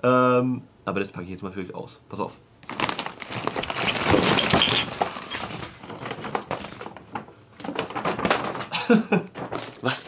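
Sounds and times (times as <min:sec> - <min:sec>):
boxes tumbling and knocking: 0:02.6 - 0:10.0
paper packaging rustling: 0:02.6 - 0:10.0.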